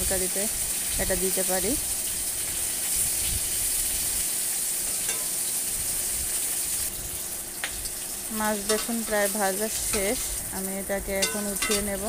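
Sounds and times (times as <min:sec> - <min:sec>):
fish and eggplant sizzling in oil: 0:00.0 - 0:12.0
metal spatula tapping pan: 0:05.1 - 0:05.4, 0:08.6 - 0:10.2, 0:11.2 - 0:12.0.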